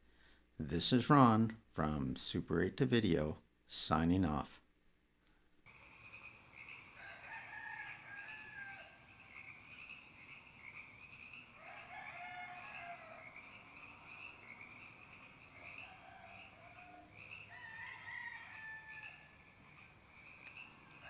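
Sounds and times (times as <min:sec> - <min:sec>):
rooster crowing: 0:06.5 - 0:09.4, 0:11.5 - 0:19.4.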